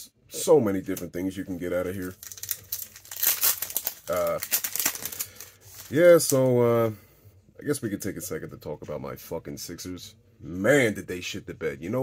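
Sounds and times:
foil wrapper crinkling and tearing: 0:01.8 - 0:06.5.

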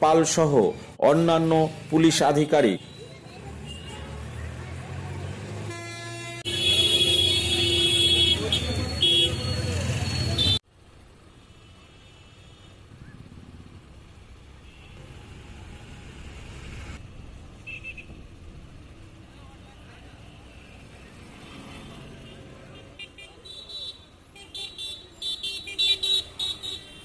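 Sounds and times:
passing traffic rumble: 0:00.0 - 0:11.6, 0:12.7 - 0:23.5
vehicle horn toots: 0:05.7 - 0:10.6.

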